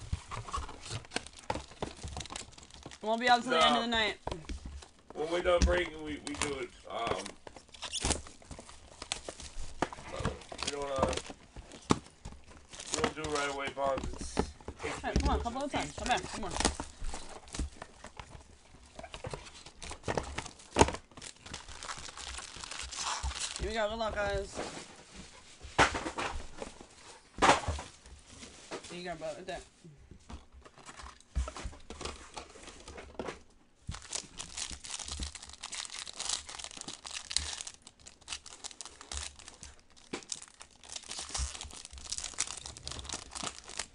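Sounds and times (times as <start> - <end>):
shrink wrap crinkling and rustling: 0.0 - 29.7, 30.4 - 43.9
shrink wrap ripping: 4.8 - 12.0, 12.6 - 14.0, 19.0 - 24.0, 33.9 - 43.9.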